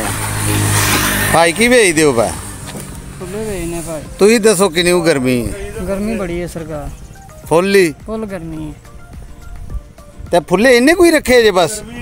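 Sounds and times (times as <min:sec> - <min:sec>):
faint road traffic: 0:00.0 - 0:12.0
man speaking: 0:03.1 - 0:08.8.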